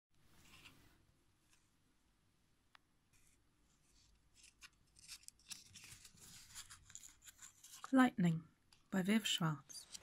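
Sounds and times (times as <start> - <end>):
paper book rustling: 0.3 - 0.9, 3.1 - 8.1.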